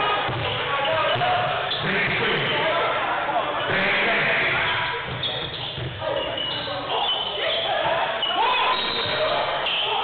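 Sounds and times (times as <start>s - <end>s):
mix of voices: 0.0s - 10.0s.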